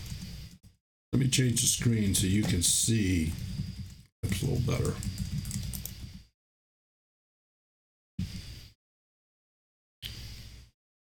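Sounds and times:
rapid small clicks: 3.3s - 6.3s.

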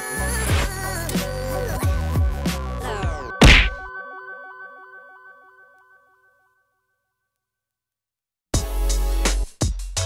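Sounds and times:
background music: 0.0s - 6.4s
loud sharp hit: 3.4s - 3.9s.

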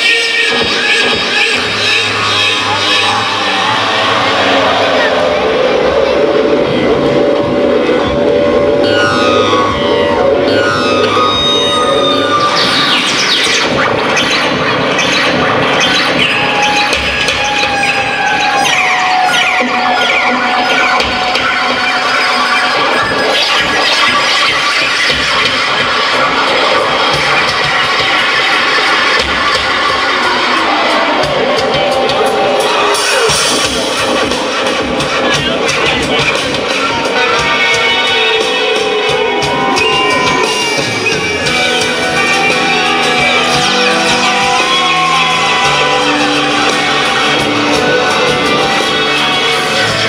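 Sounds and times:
live rock band playing: 0.0s - 50.0s.

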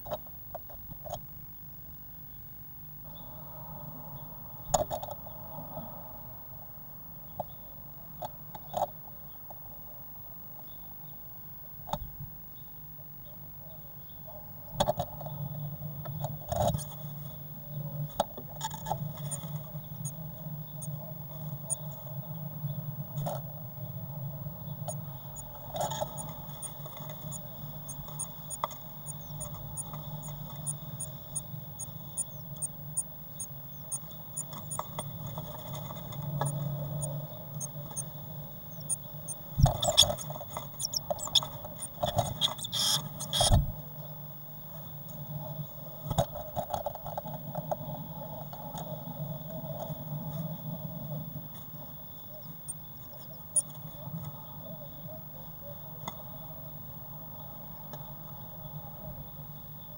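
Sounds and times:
low hum: 0.0s - 59.9s
bird cheeping: 27.3s - 35.1s, 36.4s - 43.6s.

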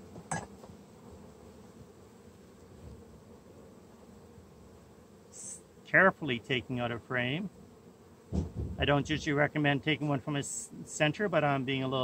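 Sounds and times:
honey bees humming: 0.0s - 12.0s.

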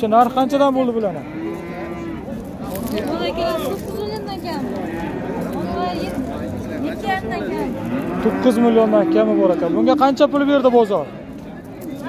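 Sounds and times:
calf mooing: 7.8s - 10.0s.

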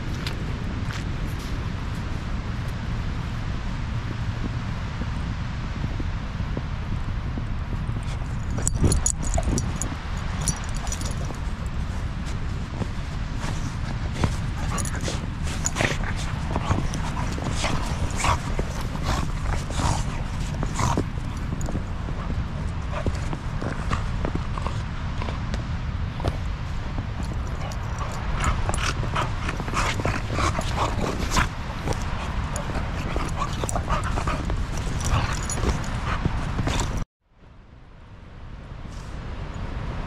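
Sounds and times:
wind rumble on microphone: 0.0s - 40.0s
dog noises: 8.0s - 25.4s, 27.0s - 37.0s
puppy crunching through snow: 8.1s - 25.4s, 26.2s - 37.0s.

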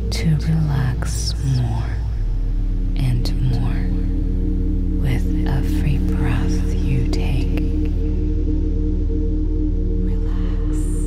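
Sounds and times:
soft whispered voice: 0.0s - 4.2s, 5.0s - 8.0s, 10.0s - 11.0s
ambient music with low drones: 0.0s - 11.0s.

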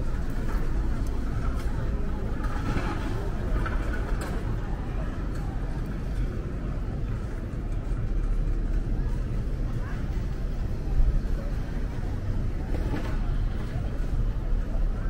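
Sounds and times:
low rumble of traffic: 0.0s - 15.0s
pedestrians chattering: 0.0s - 15.0s.

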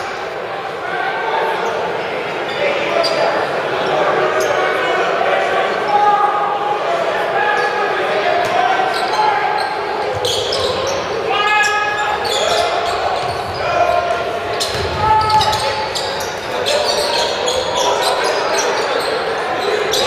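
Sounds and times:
crowd and players' voices: 0.0s - 20.0s
loud shouted call: 4.1s - 20.0s.

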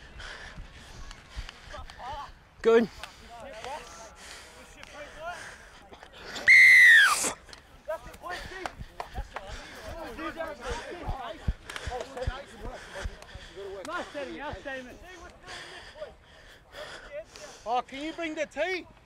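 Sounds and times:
scattered voices: 7.4s - 18.4s.

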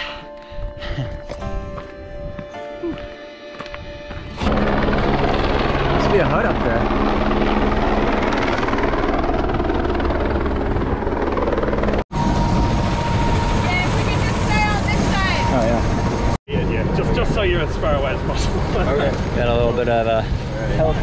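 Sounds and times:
steady turbine whine: 3.9s - 21.0s
helicopter rotor and engine: 4.1s - 21.0s.

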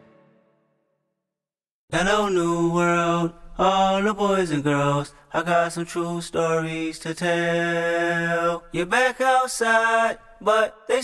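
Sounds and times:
solo voice singing: 1.9s - 11.0s.

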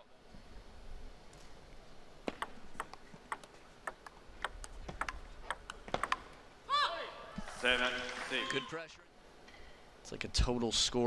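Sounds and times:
table tennis ball tapping: 2.3s - 6.4s.

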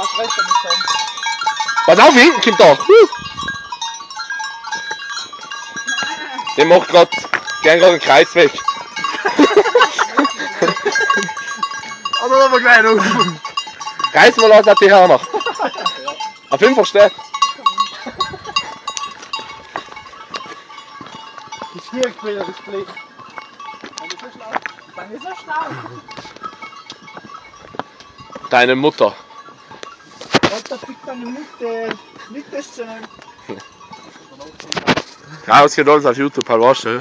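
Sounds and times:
goat bells clinking: 0.0s - 37.0s
goats bleating: 25.5s - 26.3s.

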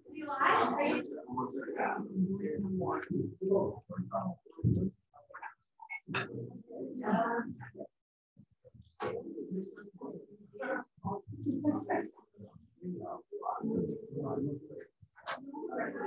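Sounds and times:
indistinct conversation: 0.0s - 16.0s.

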